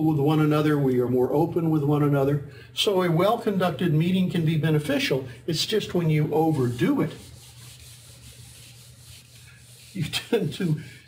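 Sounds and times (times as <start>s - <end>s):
eraser rubbing on whiteboard: 6.4s - 10.6s.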